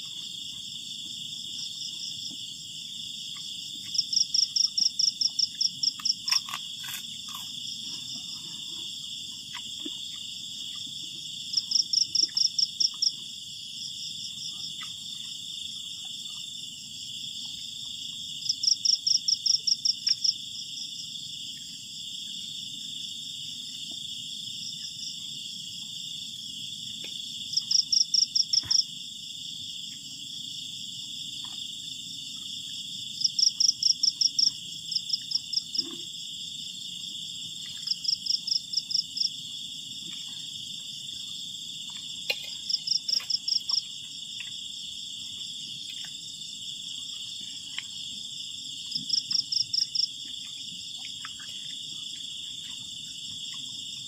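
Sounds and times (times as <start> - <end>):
insect pulsed trill: 0.0 - 54.0
insects buzzing: 0.0 - 54.0.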